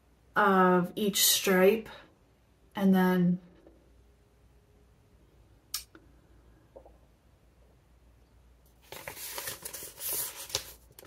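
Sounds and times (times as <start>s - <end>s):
paper rustling and crinkling: 8.7s - 11.0s.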